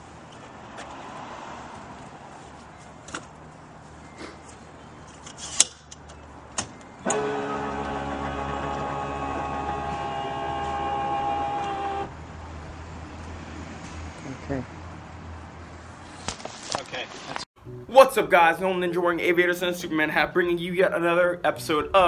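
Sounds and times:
low hum: 7.0s - 12.1s
small electric motor whirring: 7.0s - 12.1s.

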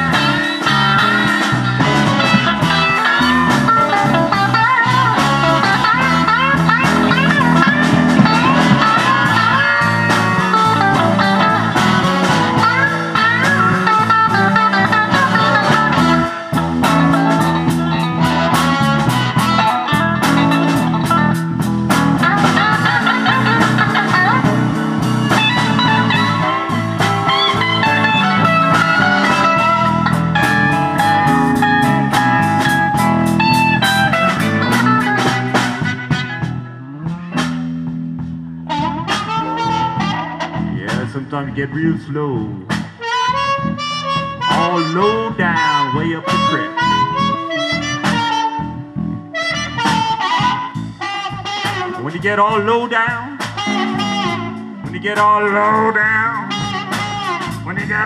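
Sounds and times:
electric guitar solo: 0.0s - 58.0s
live blues band: 0.0s - 58.0s.

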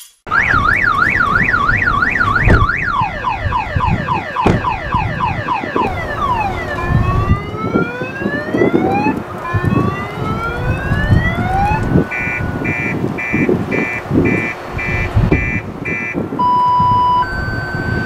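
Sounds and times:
multi-tone car alarm: 0.3s - 18.0s
dull thumps: 4.4s - 4.8s.

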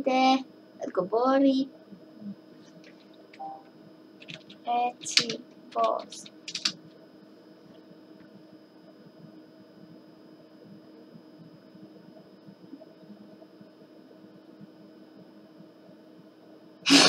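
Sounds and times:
faint electrical hum: 0.0s - 17.0s.

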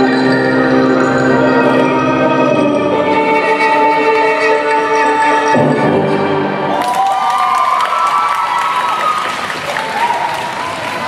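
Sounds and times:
music: 0.0s - 8.0s
audience applauding and cheering: 6.6s - 11.0s.

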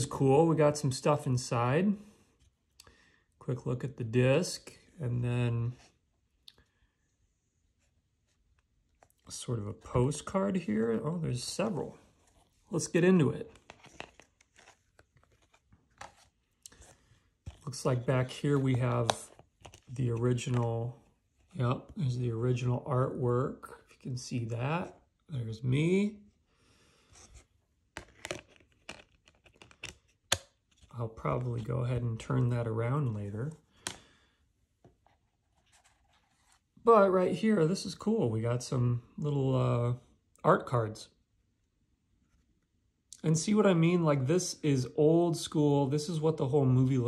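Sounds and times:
man speaking: 0.0s - 2.0s, 3.4s - 5.9s, 9.2s - 12.1s, 12.7s - 13.6s, 17.6s - 26.3s, 30.9s - 33.6s, 36.8s - 41.1s, 43.2s - 47.0s
rustling of cards handled: 7.7s - 22.6s, 27.0s - 36.8s
paper rustling: 12.0s - 21.0s, 34.8s - 36.7s.

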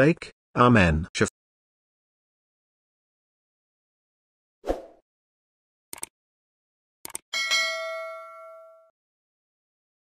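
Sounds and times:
notification bell ding: 7.4s - 8.9s.

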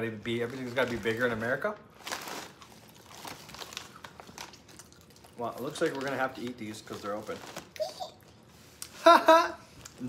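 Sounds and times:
plastic chip bag crinkling: 0.1s - 8.2s.

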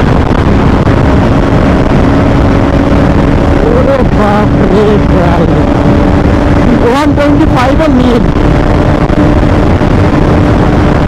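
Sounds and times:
motorcycle engine hum: 0.0s - 11.0s
wind and road rush: 0.0s - 11.0s
person talking: 3.6s - 5.7s, 6.7s - 8.2s.

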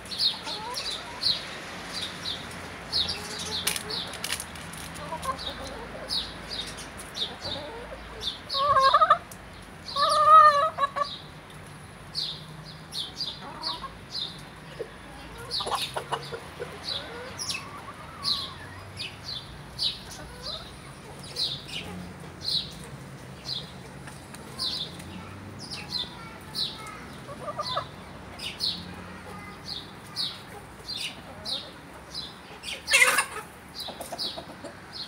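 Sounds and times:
chickens feeding: 0.0s - 35.0s
loud drawn-out chicken calls: 7.2s - 9.3s, 9.9s - 11.2s, 32.6s - 35.0s.

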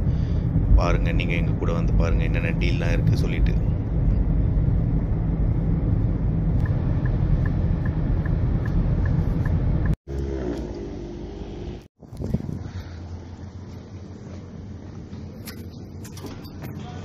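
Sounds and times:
car cabin rumble: 0.4s - 10.7s
turn signal ticking: 6.6s - 10.0s.

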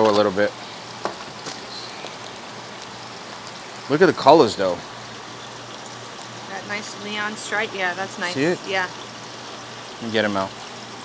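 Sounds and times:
running water hiss: 0.0s - 11.0s.

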